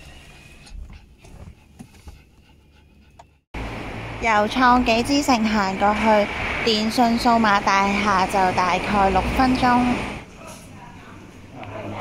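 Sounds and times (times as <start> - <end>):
small dog panting: 0.7 - 3.5.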